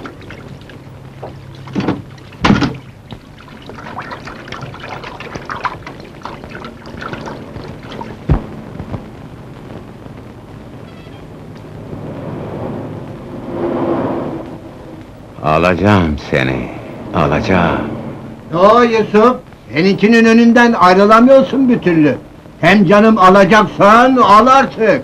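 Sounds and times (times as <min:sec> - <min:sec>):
street traffic: 0:10.9 - 0:19.3.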